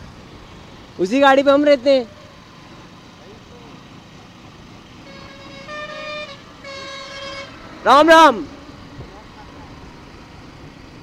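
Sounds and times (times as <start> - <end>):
motorcycle wind and road noise: 0.0 - 11.0
vehicle horn honking: 5.0 - 8.2.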